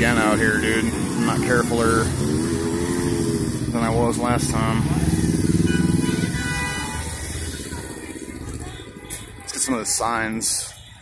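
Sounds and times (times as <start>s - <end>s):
motorcycle engines passing by: 0.0s - 11.0s.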